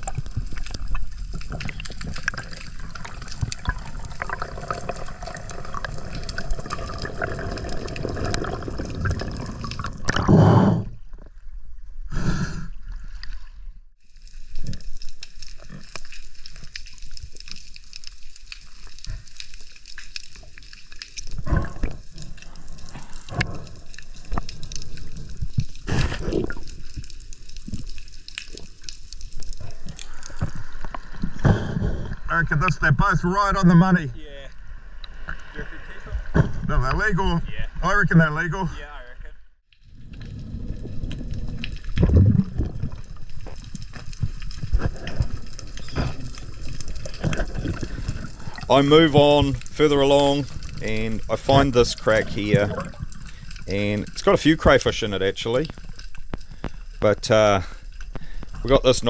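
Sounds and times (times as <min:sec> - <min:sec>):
underwater wash: 0:00.0 - 0:38.4, 0:39.6 - 0:59.0.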